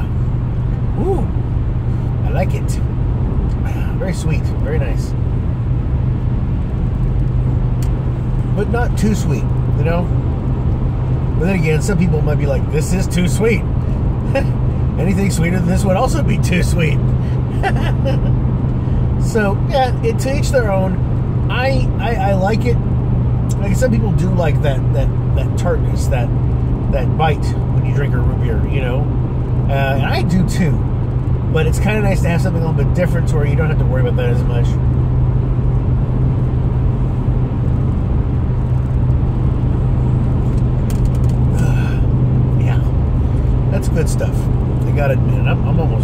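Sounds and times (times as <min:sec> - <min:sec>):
car cabin road and engine drone: 0:00.0 - 0:46.0
person laughing: 0:17.4 - 0:18.4.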